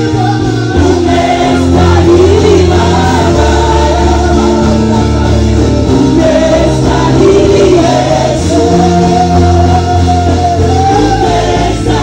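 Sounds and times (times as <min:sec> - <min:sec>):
amplified keyboard: 0:00.0 - 0:12.0
gospel choir singing: 0:00.0 - 0:12.0.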